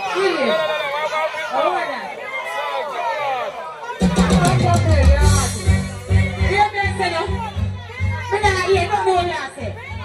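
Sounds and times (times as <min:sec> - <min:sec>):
heavy bass beat: 0:04.0 - 0:10.0.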